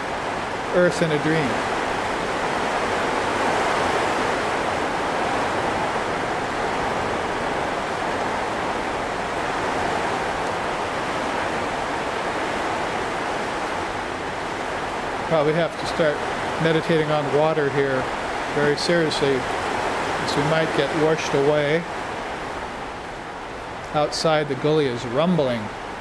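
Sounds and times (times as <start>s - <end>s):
rushing water roar: 0.0s - 26.0s.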